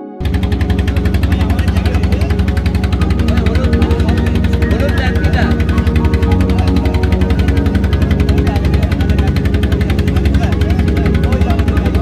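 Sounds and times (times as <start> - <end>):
boat engine chugging: 0.2 - 12.0.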